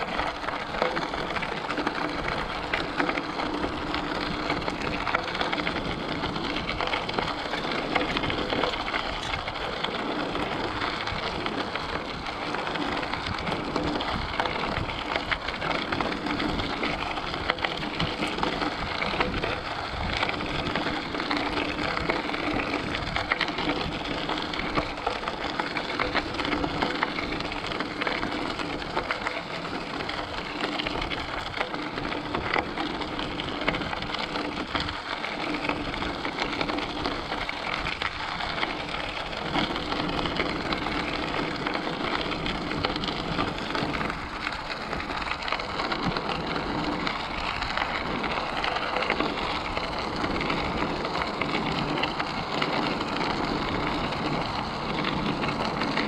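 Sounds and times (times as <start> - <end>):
bicycle tyres crunching gravel: 0.0 - 56.0.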